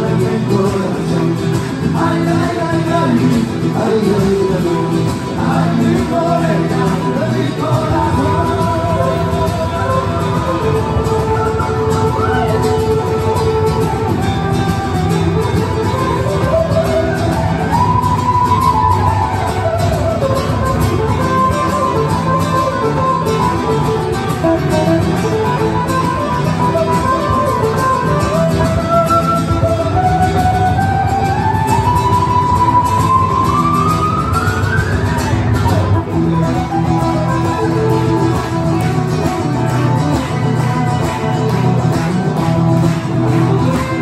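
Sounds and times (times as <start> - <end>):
acoustic guitars playing: 0.0 - 44.0.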